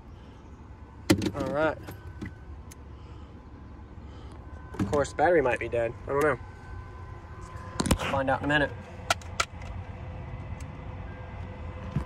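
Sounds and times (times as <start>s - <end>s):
faint steady whine: 0.0s - 12.0s
vehicle engine idling: 0.0s - 12.0s.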